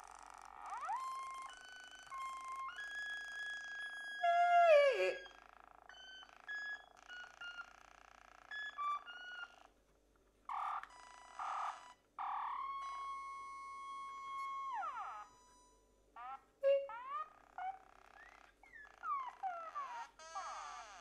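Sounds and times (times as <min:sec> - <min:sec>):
electronic held tones: 0:00.5 - 0:09.7, 0:10.5 - 0:19.0.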